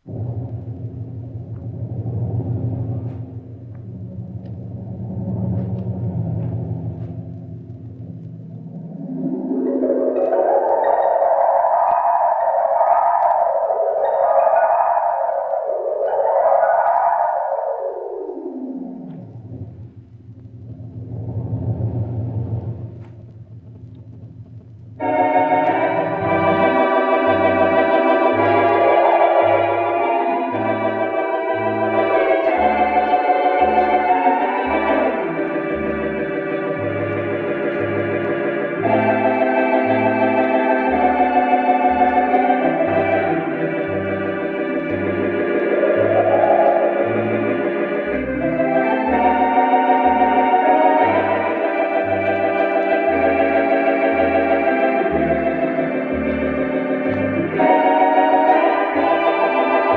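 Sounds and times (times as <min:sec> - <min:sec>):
organ wind effect sweeps: 0:00.0 - 0:23.1, 0:25.0 - 0:59.9
organ chords over pedal bass: 0:00.0 - 0:59.9.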